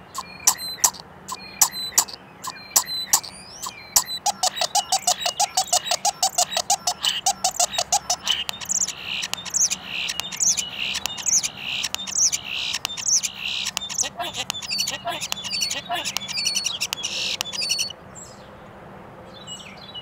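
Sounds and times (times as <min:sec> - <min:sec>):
starling singing: 0:00.0 - 0:18.0
fast clicking rattles: 0:04.0 - 0:17.9.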